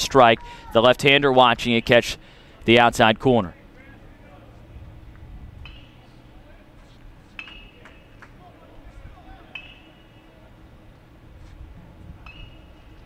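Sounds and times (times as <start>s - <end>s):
outdoor ballpark ambience: 0.0s - 13.0s
short metallic pings: 9.5s - 10.2s.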